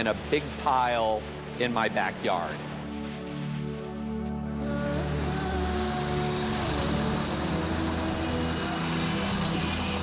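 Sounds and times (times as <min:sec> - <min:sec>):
soft background music: 0:00.0 - 0:10.0
street traffic passing: 0:00.0 - 0:10.0.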